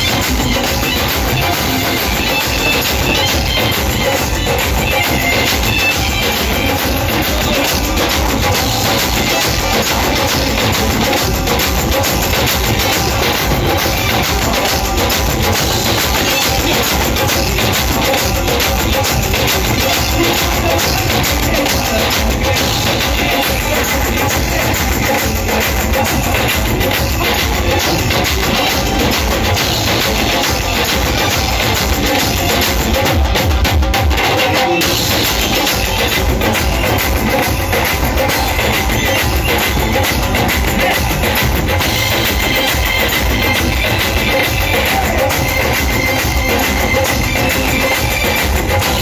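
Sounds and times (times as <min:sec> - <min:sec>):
dhols beaten with sticks: 0:00.0 - 0:49.0
live band music: 0:00.0 - 0:49.0.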